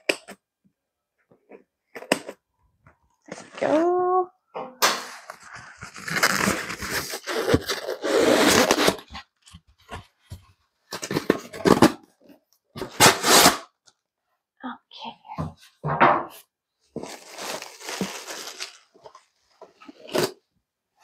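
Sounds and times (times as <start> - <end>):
foam lid scraping and squeaking: 5.1 - 9.2.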